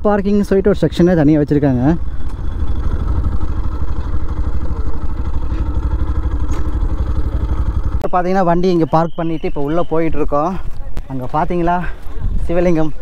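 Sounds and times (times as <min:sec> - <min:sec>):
motorcycle engine running: 0:00.3 - 0:13.0.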